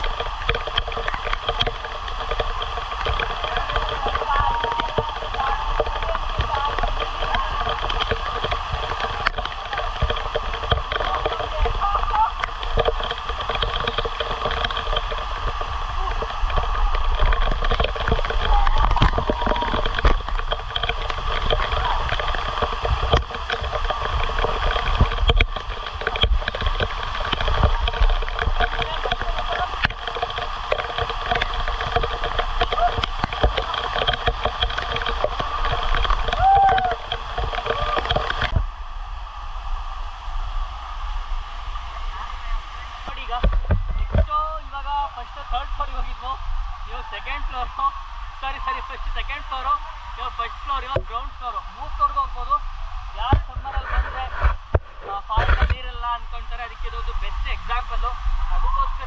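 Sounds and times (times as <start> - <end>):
rush of falling water: 0.0 - 59.0.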